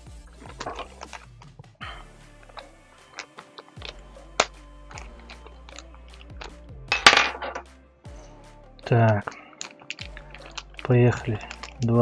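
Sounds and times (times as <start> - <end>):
quiet background music: 0.0 - 12.0
small parts clinking in plastic bag: 8.8 - 12.0.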